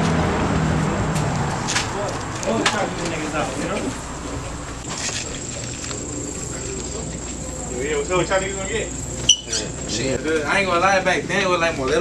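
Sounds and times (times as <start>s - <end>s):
faint voices: 1.9s - 12.0s.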